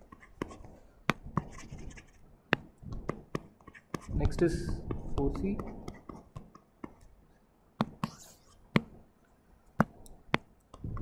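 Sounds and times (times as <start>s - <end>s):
stylus tapping on tablet screen: 0.0s - 7.2s, 7.8s - 9.1s, 9.7s - 11.0s.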